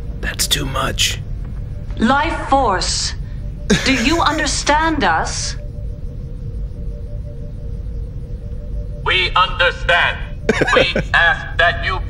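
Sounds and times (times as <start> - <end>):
low eerie drone: 0.0 - 11.6.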